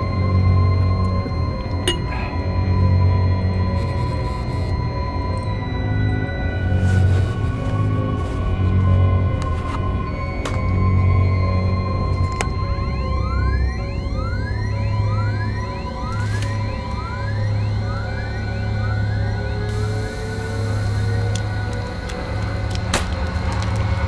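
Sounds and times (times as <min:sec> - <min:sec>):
low electronic drone: 0:00.0 - 0:24.0.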